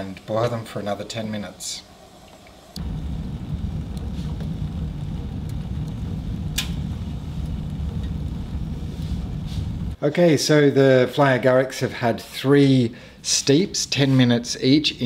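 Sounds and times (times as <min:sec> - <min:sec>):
fire crackle: 0:00.2 - 0:10.0
wood fire rumbling in stove: 0:02.7 - 0:10.0.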